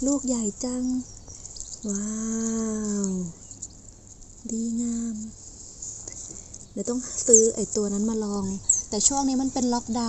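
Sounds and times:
steady high-pitched hiss: 0.0s - 10.0s.

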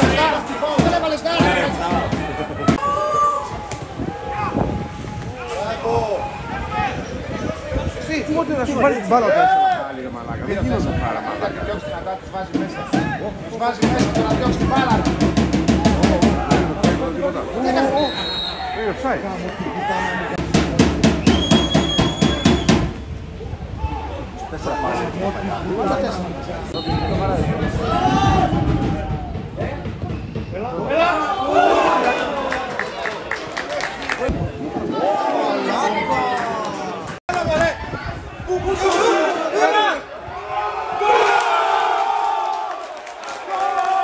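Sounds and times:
drum beaten rapidly: 0.0s - 2.8s, 13.8s - 17.2s, 20.4s - 23.0s, 27.0s - 31.1s
crowd shouting: 0.0s - 8.1s, 12.6s - 20.4s, 26.7s - 44.0s
spectators yelling: 0.0s - 8.1s, 10.9s - 20.4s, 26.7s - 44.0s.

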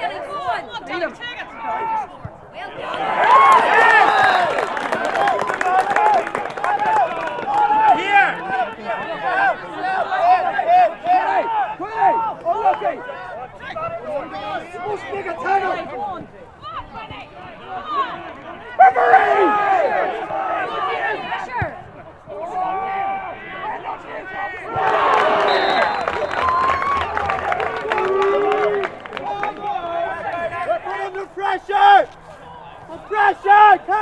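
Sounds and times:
voices shouting and calling out: 0.0s - 34.0s
many voices shouting together: 2.7s - 8.6s, 18.8s - 21.6s.

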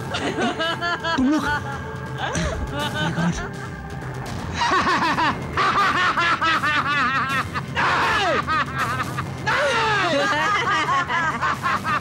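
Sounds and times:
man laughing: 0.0s - 3.8s, 4.5s - 12.0s.

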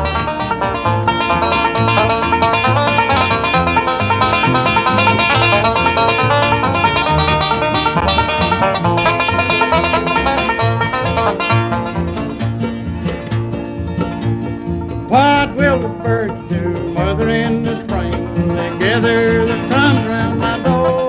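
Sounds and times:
banjo picking rolls: 0.0s - 21.0s
bluegrass band playing: 0.0s - 21.0s
strummed acoustic guitar: 0.0s - 21.0s
upright bass pulse: 0.0s - 21.0s.

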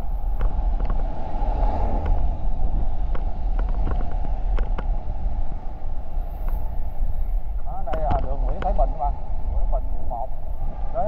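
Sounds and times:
road rumble: 0.0s - 11.0s
wind on microphone: 0.0s - 11.0s.

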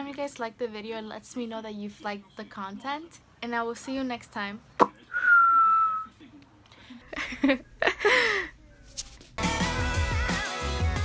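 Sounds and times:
woman whistling: 5.2s - 6.1s.

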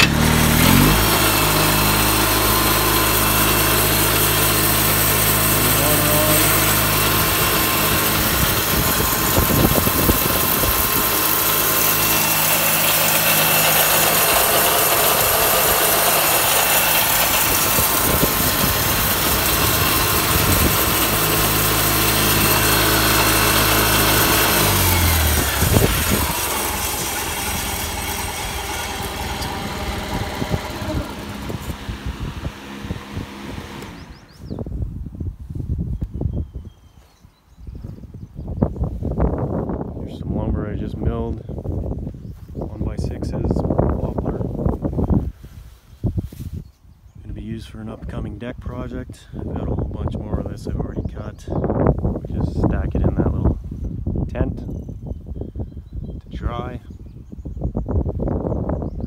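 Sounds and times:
small engine idling: 0.0s - 34.8s
radiator fan whirring: 0.0s - 35.0s.

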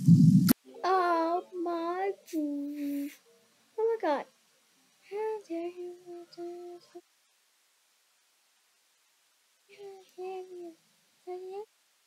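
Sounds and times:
person humming: 2.3s - 3.2s, 5.1s - 7.0s, 9.7s - 11.7s.

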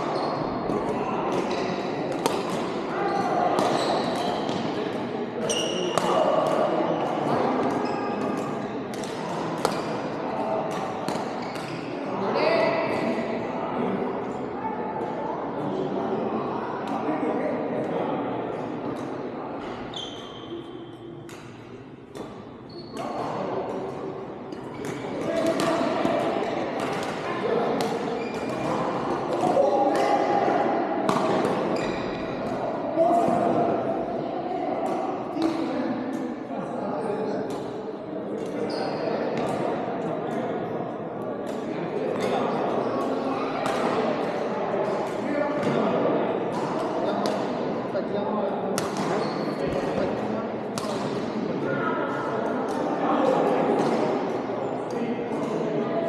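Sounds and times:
rackets striking shuttlecocks: 0.7s - 2.8s.

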